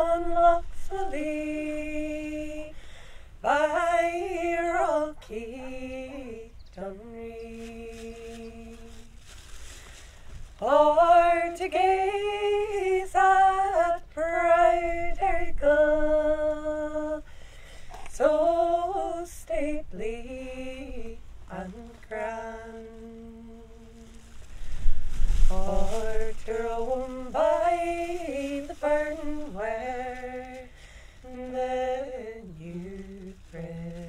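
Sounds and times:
woman singing unaccompanied: 0.0s - 9.3s, 10.5s - 17.3s, 18.0s - 24.6s, 25.2s - 34.0s.

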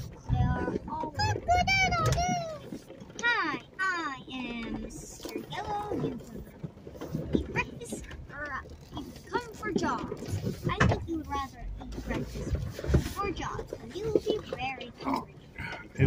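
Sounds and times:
low engine rumble: 0.0s - 16.0s.

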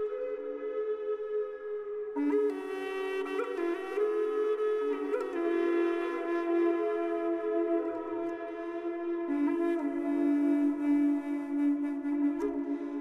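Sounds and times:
woodwind holding sustained notes: 0.0s - 13.0s.

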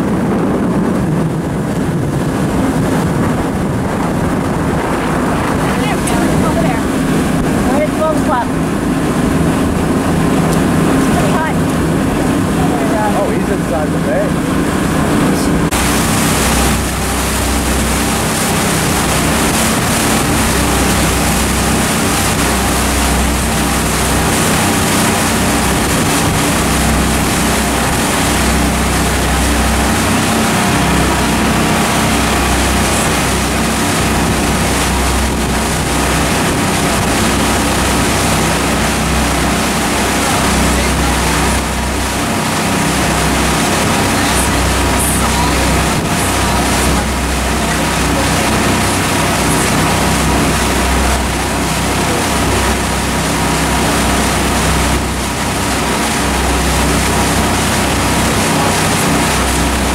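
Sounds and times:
boat engine droning: 0.0s - 59.9s
water noise: 0.0s - 59.9s
wind on microphone: 0.0s - 59.9s.

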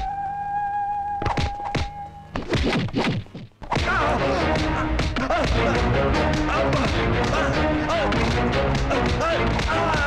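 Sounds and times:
film score music: 0.0s - 10.0s.

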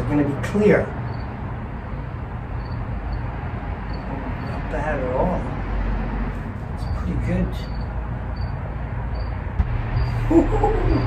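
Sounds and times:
low outdoor rumble: 6.3s - 11.0s.

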